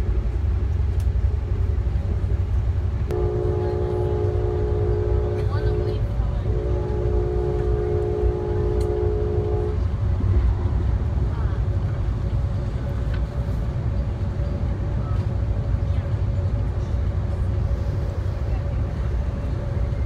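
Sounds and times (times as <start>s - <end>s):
train car rumbling on rails: 0.0s - 20.0s
train horn chord: 3.1s - 10.0s.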